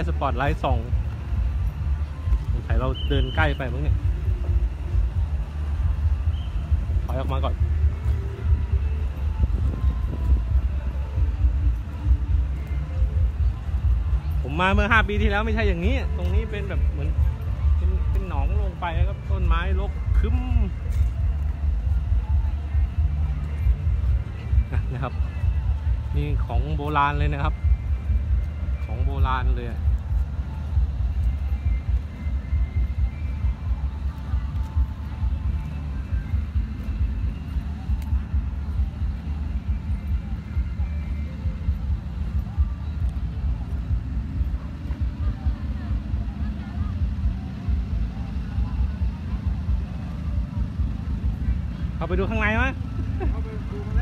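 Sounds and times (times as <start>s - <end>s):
faint steady tones: 0.0s - 54.0s.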